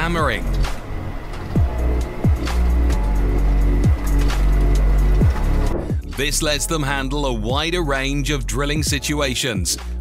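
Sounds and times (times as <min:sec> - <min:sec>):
deep bass: 0:00.0 - 0:10.0
sliding bass notes: 0:00.0 - 0:10.0.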